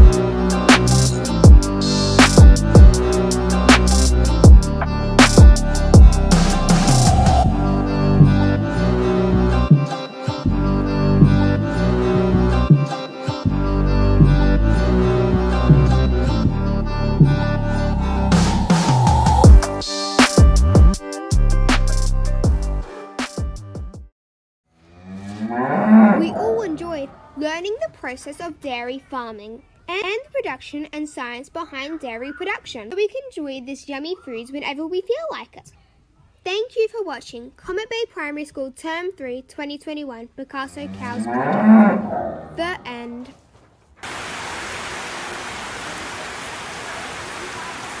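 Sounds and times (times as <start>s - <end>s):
cow mooing: 24.8s - 27.3s, 40.6s - 43.0s
steady rain falling: 44.0s - 48.0s.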